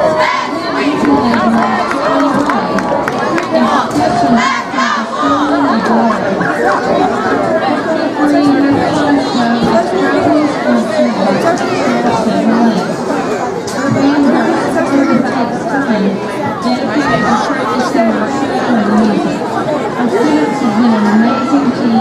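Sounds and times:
crowd chatter: 0.0s - 22.0s.

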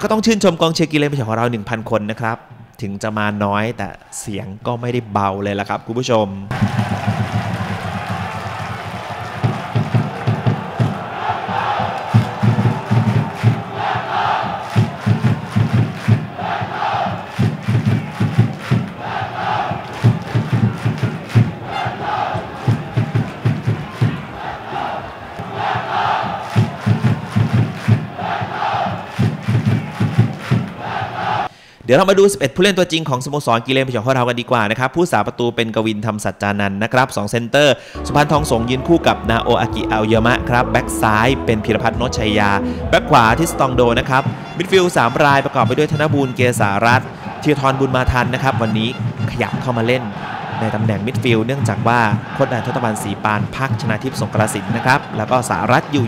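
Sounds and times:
football crowd chanting: 6.5s - 31.5s, 38.0s - 56.0s.

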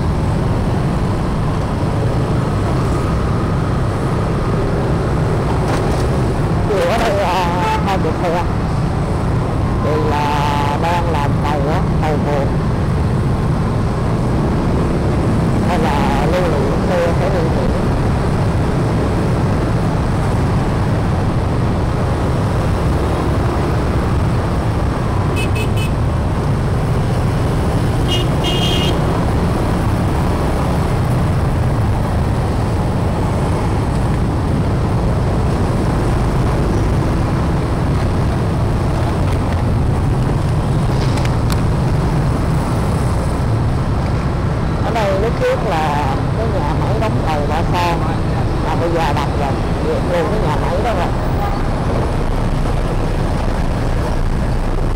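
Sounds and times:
traffic: 0.0s - 54.9s
wind: 0.0s - 54.9s.

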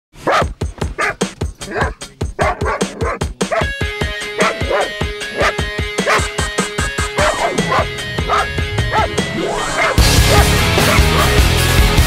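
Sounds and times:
dog barking and yipping: 0.2s - 3.8s, 4.4s - 11.5s
background music with fast beat: 0.3s - 12.0s.

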